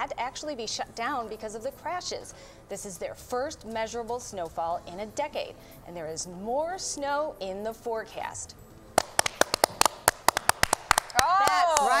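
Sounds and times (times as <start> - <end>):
people clapping: 9.0 - 12.0.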